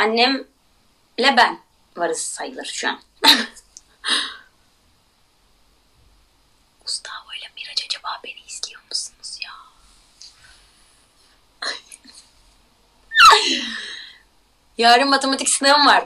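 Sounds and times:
woman laughing: 3.2s - 4.4s, 13.1s - 14.1s
woman whispering: 6.8s - 10.4s, 11.6s - 12.2s.

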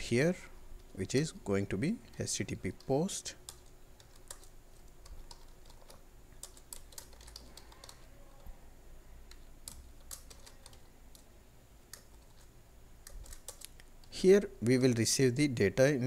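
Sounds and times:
typing on a keyboard: 3.5s - 8.5s, 9.3s - 11.3s, 11.9s - 13.8s.

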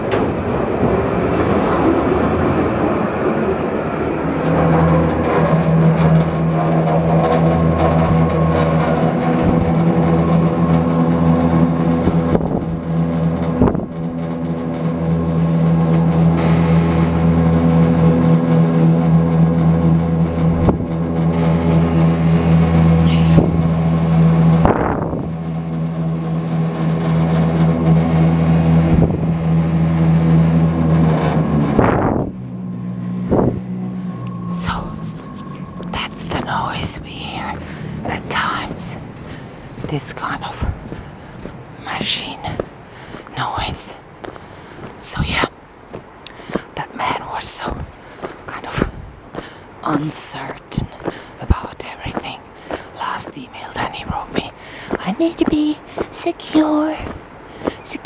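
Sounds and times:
low machine drone: 0.0s - 58.0s.

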